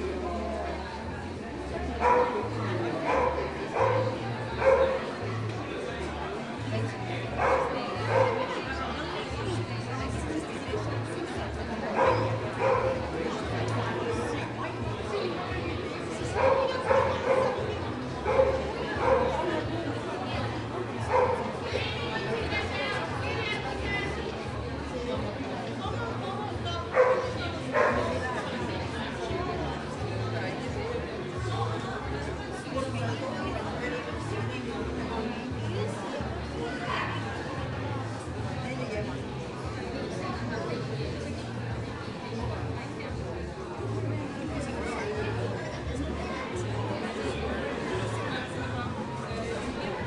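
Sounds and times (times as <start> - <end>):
background chatter: 0.0 - 50.0
dog barking: 2.0 - 2.4, 3.1 - 5.0, 7.4 - 8.4, 12.0 - 13.0, 16.4 - 17.6, 18.3 - 19.3, 21.1 - 21.4, 26.9 - 28.1.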